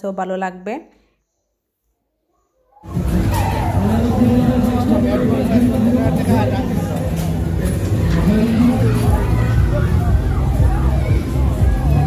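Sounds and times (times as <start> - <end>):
funfair din: 2.8 - 12.0.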